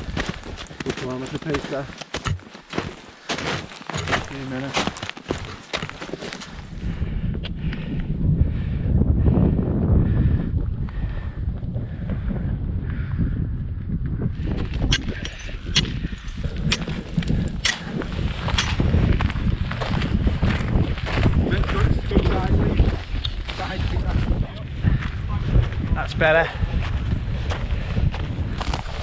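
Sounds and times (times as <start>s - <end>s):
footsteps crunching on frozen snow: 0.0s - 6.8s, 14.4s - 29.0s
wind buffeting the microphone: 0.0s - 29.0s.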